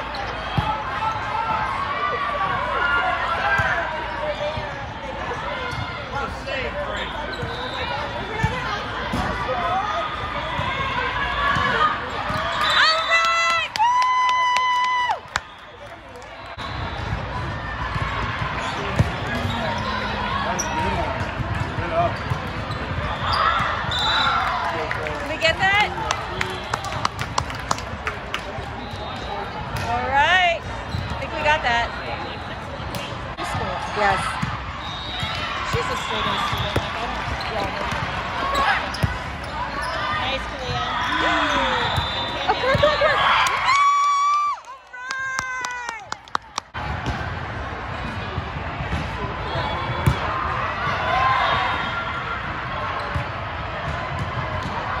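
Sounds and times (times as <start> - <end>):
voices echoing in sports hall: 0.0 - 55.0
players calling out: 17.4 - 24.5.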